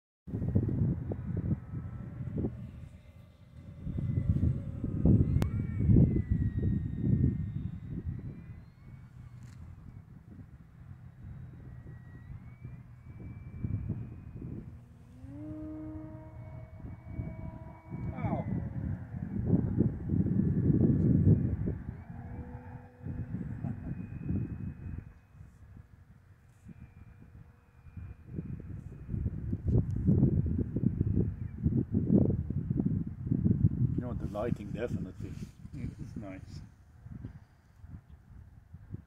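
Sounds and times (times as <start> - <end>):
low rumble: 0.3 - 37.4
rc plane motor whine: 0.4 - 39.0.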